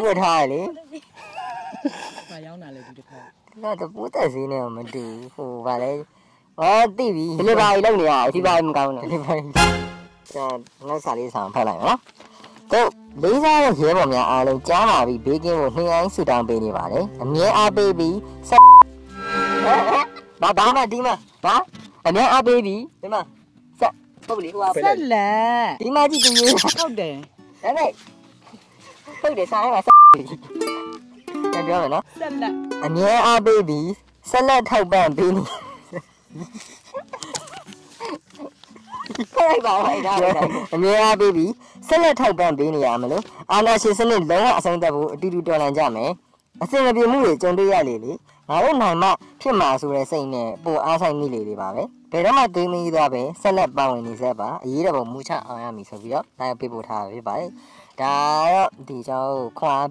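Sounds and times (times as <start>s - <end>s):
person laughing loudly: 1.2s - 2.4s, 26.2s - 26.9s, 35.4s - 40.8s.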